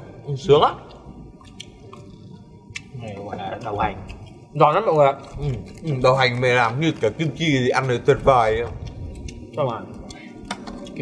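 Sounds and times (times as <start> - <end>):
wet chewing: 0.8 - 11.0.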